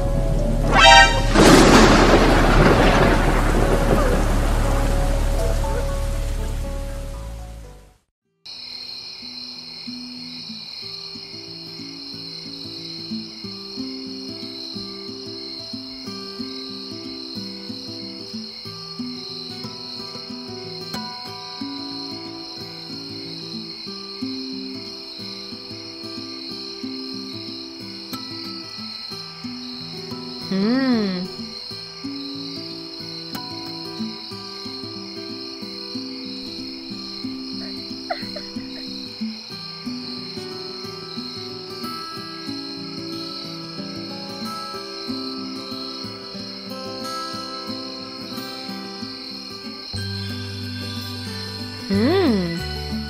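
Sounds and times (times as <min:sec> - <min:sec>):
thunderclap: 0:00.0 - 0:06.6
crickets chirping: 0:00.0 - 0:07.8, 0:08.5 - 0:53.0
rain: 0:00.0 - 0:08.1, 0:12.4 - 0:53.0
soft music of held notes: 0:03.5 - 0:08.0, 0:09.8 - 0:53.0.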